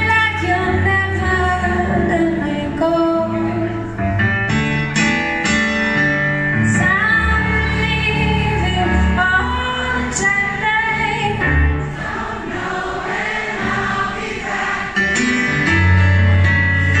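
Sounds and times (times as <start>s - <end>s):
piano: 0.0s - 17.0s.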